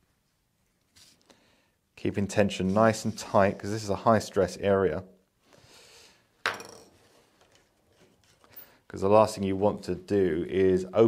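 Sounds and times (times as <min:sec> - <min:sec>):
faint handling noise: 0:06.8 - 0:08.8.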